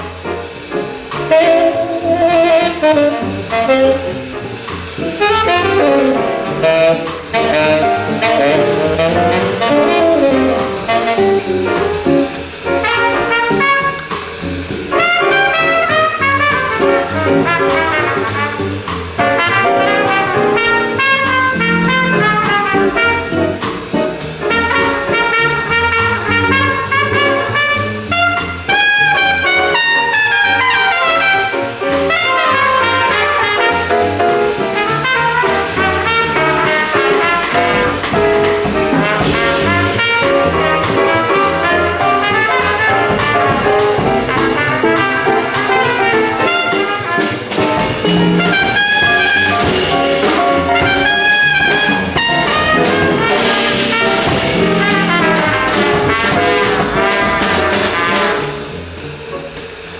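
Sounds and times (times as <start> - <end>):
band accompaniment with cymbals: 0.0 - 59.9
trumpet jazz solo: 0.0 - 59.9.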